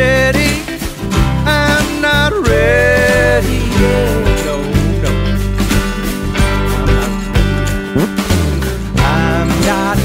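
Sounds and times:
country band backing: 0:00.0 - 0:10.0
person singing: 0:01.5 - 0:05.5, 0:06.4 - 0:08.2, 0:08.9 - 0:10.0.

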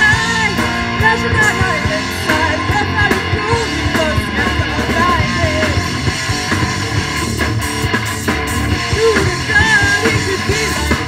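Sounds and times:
bass guitar: 0:00.0 - 0:11.0
drums: 0:00.0 - 0:11.0
electric guitars strummed: 0:00.0 - 0:11.0.

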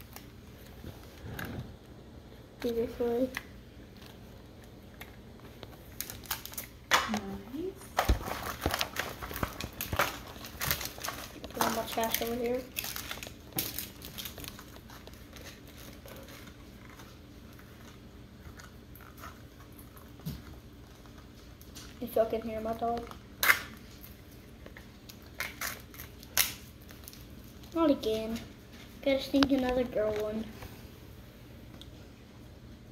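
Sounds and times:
plastic wrappers crinkling: 0:02.6 - 0:30.6.

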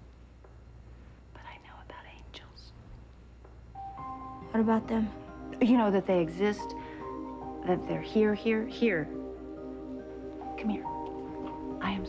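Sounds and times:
faint low hum: 0:00.0 - 0:12.0
woman whispering: 0:01.3 - 0:02.8, 0:10.6 - 0:11.0, 0:11.8 - 0:12.0.

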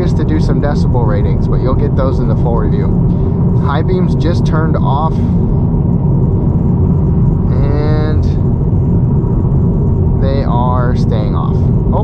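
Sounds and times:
road and tyre noise in car cabin: 0:00.0 - 0:12.0.

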